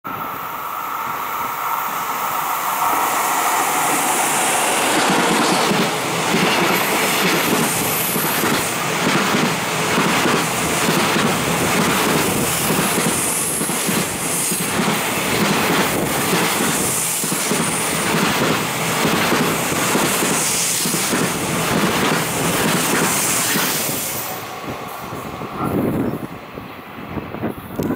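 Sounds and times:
freight train rumbling: 0:00.0 - 0:27.9.

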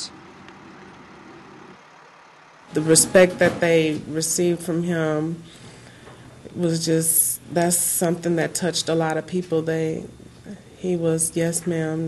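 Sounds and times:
faint vehicle and street noise: 0:00.0 - 0:12.0.

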